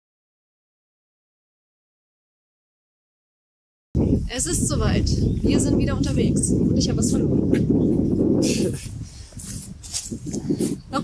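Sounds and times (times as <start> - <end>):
wind noise on microphone: 4.0 - 11.0.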